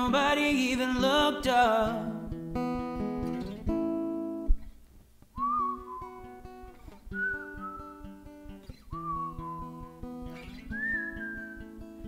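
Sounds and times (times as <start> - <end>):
acoustic guitar chords: 0.0 - 4.7, 5.4 - 12.0
whistled melody: 5.4 - 12.0.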